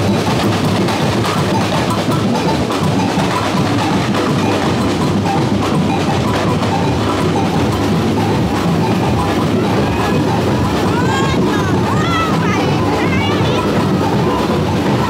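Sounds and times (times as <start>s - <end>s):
bass drums: 0.0s - 15.0s
crowd noise: 0.0s - 15.0s
stick-struck double bell: 0.1s - 15.0s.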